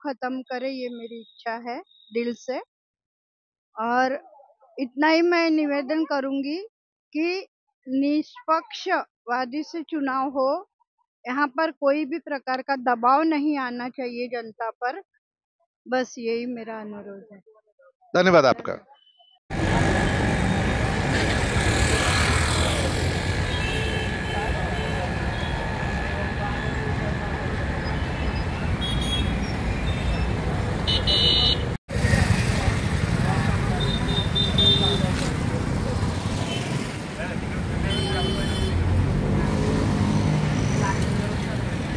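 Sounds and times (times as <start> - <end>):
street traffic: 18.4 - 41.9
motorcycles passing: 19.5 - 41.9
vehicle horn toots: 21.9 - 26.0, 27.9 - 31.8, 33.7 - 35.2, 37.8 - 38.8.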